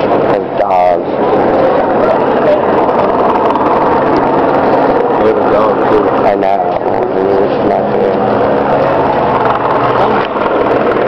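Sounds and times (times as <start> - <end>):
crowd voices overlapping: 0.0 - 11.0
engine hum: 0.0 - 11.0.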